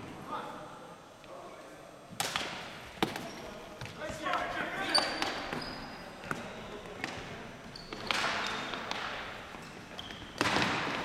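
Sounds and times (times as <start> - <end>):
hockey sticks and ball clacking: 2.1 - 11.0.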